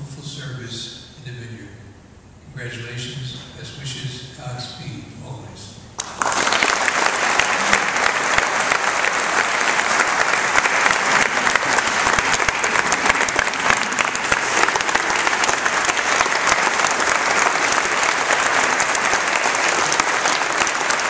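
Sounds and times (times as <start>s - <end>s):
congregation applauding: 6.0s - 21.0s.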